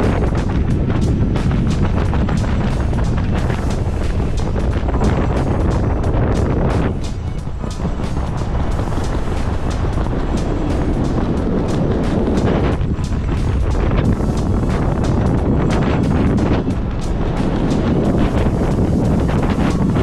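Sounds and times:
music with steady beat: 0.0 - 20.0
wind buffeting microphone: 0.0 - 20.0.

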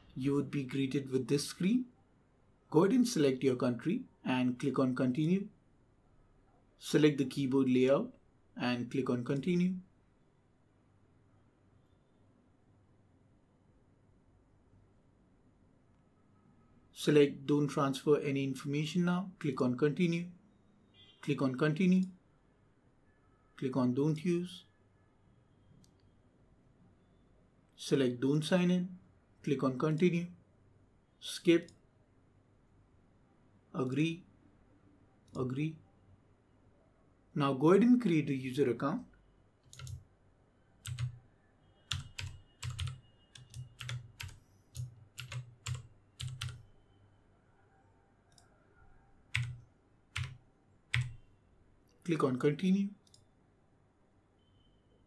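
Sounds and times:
computer mouse clicking: 39.6 - 40.0, 40.8 - 41.2, 41.9 - 46.6, 49.3 - 49.6, 50.2 - 51.2.

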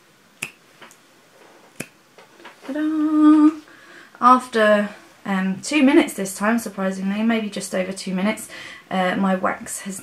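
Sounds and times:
fingers snapping: 0.4 - 1.0, 1.8 - 2.0.

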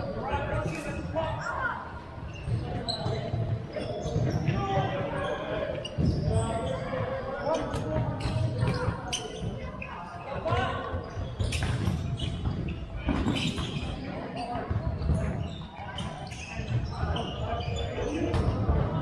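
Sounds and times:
ball bouncing on wooden court: 10.4 - 13.8.

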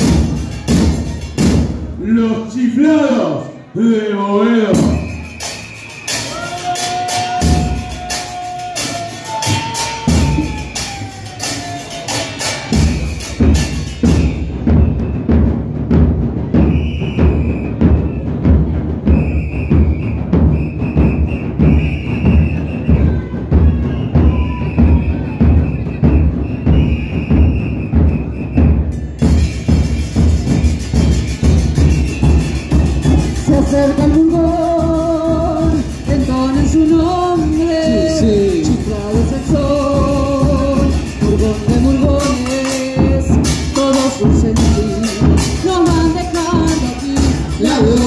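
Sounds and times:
bass drums beating: 0.0 - 2.2, 4.7 - 48.0.

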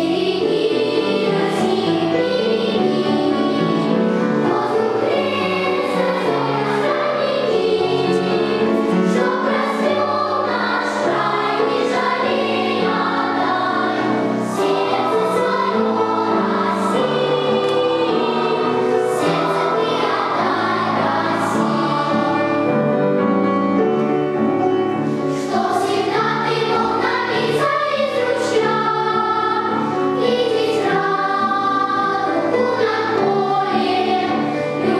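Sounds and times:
children's choir singing: 0.0 - 34.9.

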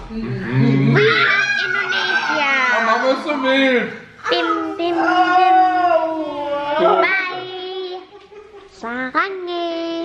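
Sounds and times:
child humming: 4.3 - 8.0.

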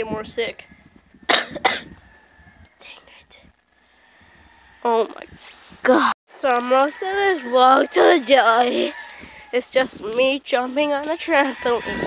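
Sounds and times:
faint whispering: 2.8 - 3.5.

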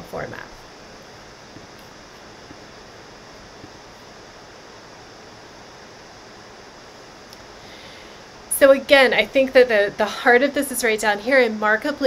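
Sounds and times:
room and microphone hiss: 0.0 - 12.0.

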